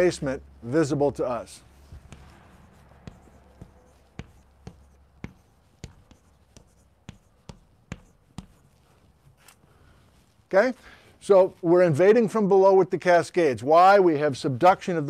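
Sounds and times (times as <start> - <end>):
chalk tapping and scraping on blackboard: 1.5 - 10.3.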